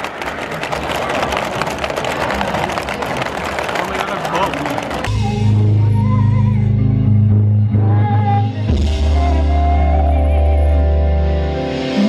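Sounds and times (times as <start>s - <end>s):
band playing with loud bass: 5.0s - 12.0s.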